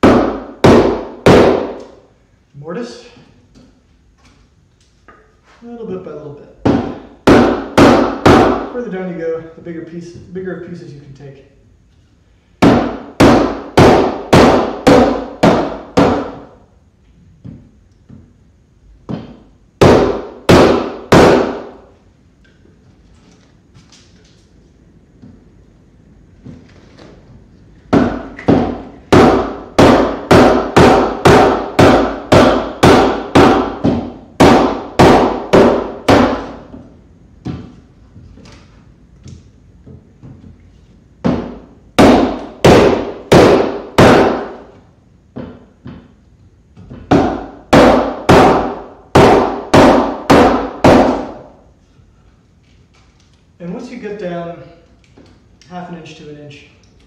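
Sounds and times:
mallet striking chisel: 0.0 - 1.9, 27.9 - 36.6.

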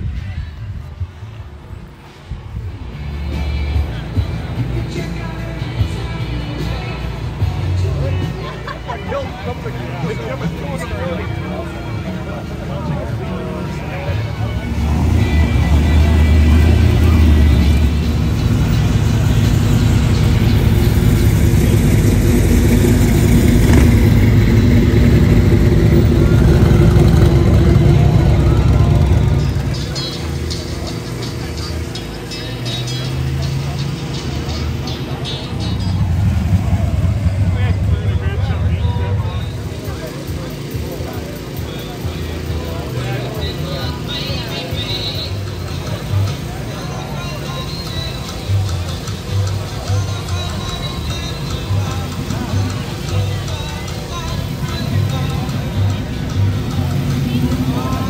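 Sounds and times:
car engines running: 0.0 - 58.0
people talking: 0.0 - 58.0.

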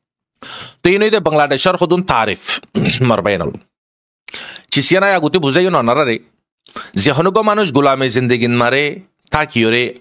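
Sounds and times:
man speaking into a microphone: 0.8 - 3.7, 4.7 - 10.0.

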